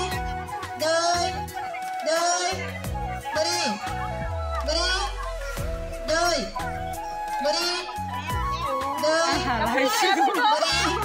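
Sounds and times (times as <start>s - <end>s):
wavering voice chanting: 0.0s - 9.9s
song with stepping bass line: 2.6s - 9.8s.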